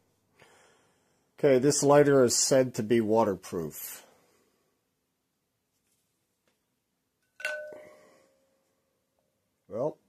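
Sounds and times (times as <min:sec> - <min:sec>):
object clinking against glass bowl: 0:07.2 - 0:08.3
glass bowl ringing: 0:07.2 - 0:08.6.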